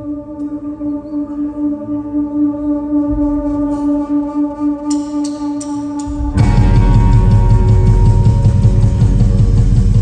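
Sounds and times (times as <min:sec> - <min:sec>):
drums: 0:04.9 - 0:10.0
bass guitar: 0:06.2 - 0:10.0
electric guitars: 0:06.4 - 0:10.0.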